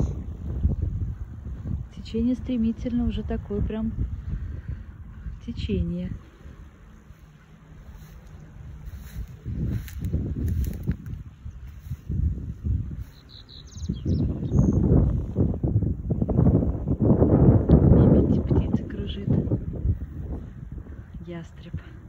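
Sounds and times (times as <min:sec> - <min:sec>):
wind buffeting microphone: 0:00.0 - 0:22.0
bird chirps: 0:13.0 - 0:14.9.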